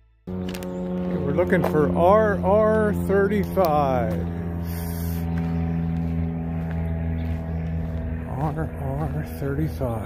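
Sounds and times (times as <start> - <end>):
low mechanical hum: 0.2 - 10.0.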